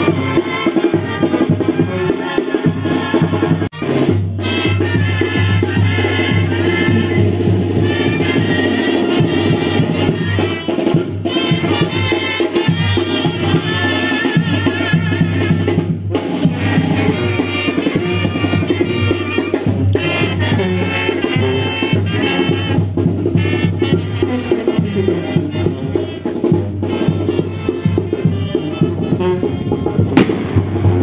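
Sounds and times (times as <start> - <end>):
latin band with brass and drums: 0.0 - 31.0.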